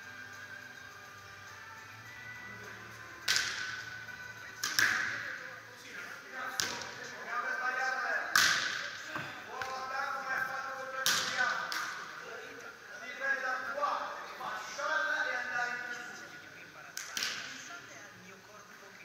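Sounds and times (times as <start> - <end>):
volleyball slaps: 3.2 - 3.9, 4.6 - 5.3, 6.5 - 7.1, 8.3 - 9.8, 11.0 - 12.2, 17.0 - 17.6.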